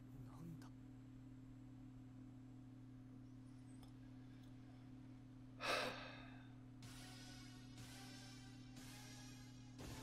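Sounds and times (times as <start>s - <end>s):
faint steady hum: 0.0s - 10.0s
man sighing: 5.6s - 6.6s.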